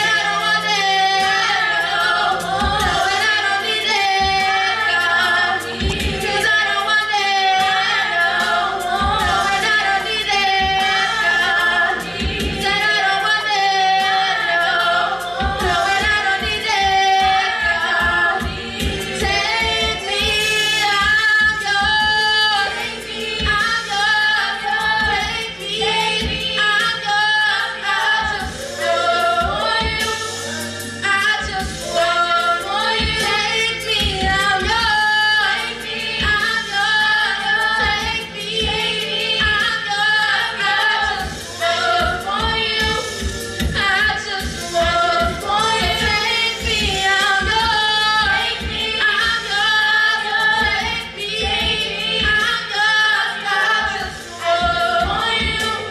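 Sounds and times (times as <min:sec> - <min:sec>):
women singing gospel in harmony: 0:00.0 - 0:55.9.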